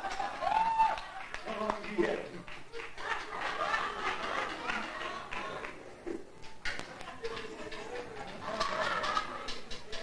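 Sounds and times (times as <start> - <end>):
people talking: 3.0 - 10.0.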